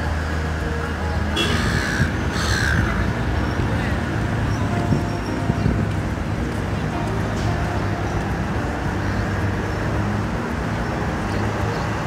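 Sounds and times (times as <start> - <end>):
traffic engines rumbling: 0.0 - 12.0.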